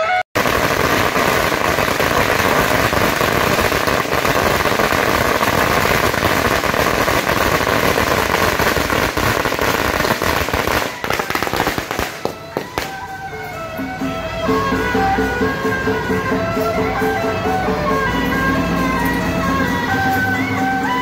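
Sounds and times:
firecrackers crackling: 0:00.1 - 0:14.0.

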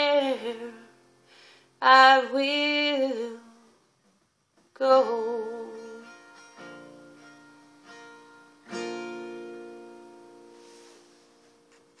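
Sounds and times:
acoustic guitar strums: 0:05.8 - 0:12.0.

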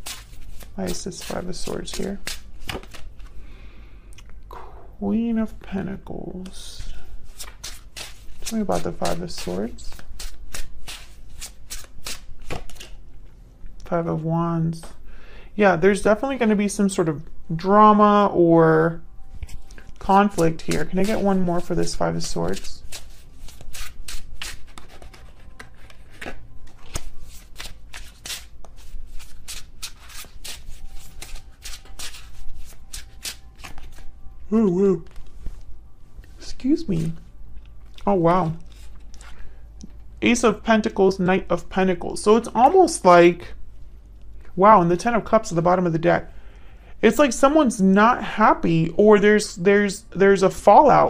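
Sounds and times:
cards being shuffled: 0:00.0 - 0:03.4, 0:06.4 - 0:13.0, 0:19.4 - 0:34.1, 0:38.0 - 0:40.0.

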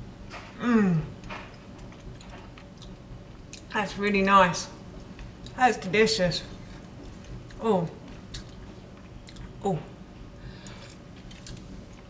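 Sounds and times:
person chewing quietly: 0:01.1 - 0:03.7, 0:06.7 - 0:09.6, 0:10.6 - 0:12.0.

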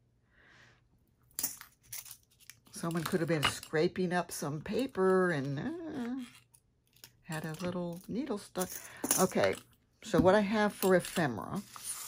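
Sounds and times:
soft rustle of craft materials: 0:01.5 - 0:12.0.

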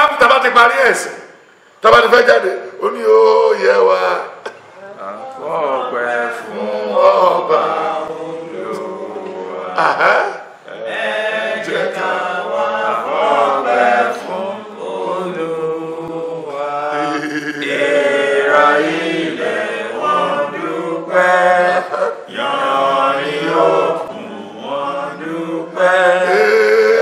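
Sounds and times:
men singing a chant-like hymn: 0:05.4 - 0:27.0.

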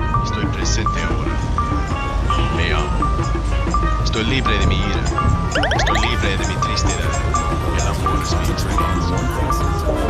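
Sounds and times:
falling synthetic swoop: 0:05.6 - 0:06.3
short high beep: 0:05.6 - 0:06.3.

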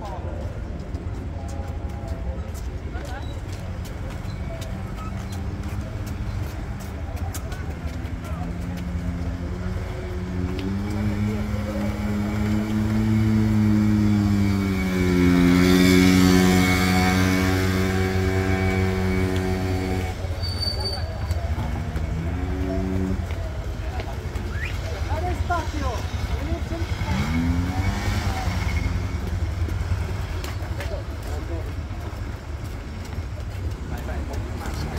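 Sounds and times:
motorcycles running at low revs: 0:04.6 - 0:20.3, 0:21.3 - 0:24.4, 0:26.0 - 0:32.6.

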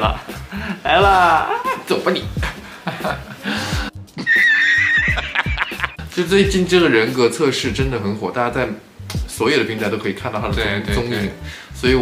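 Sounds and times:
low thumping beat: 0:02.3 - 0:04.1, 0:05.0 - 0:06.8, 0:10.4 - 0:11.1
horse whinny: 0:04.2 - 0:05.5.

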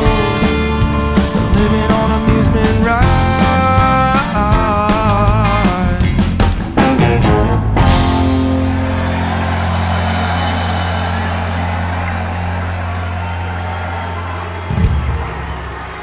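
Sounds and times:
audience cheering: 0:00.0 - 0:05.8, 0:06.9 - 0:16.0
rock band chord ringing: 0:00.0 - 0:16.0
low drum hit: 0:14.7 - 0:16.0.

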